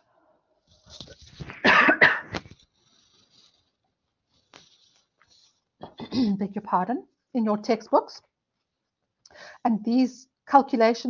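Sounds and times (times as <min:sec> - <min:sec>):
woman coughing: 0:01.6 - 0:02.4, 0:05.8 - 0:06.4.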